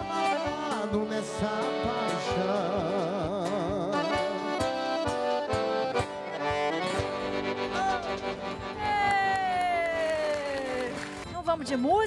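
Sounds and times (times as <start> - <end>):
accordion-led band music: 0.0 - 12.0.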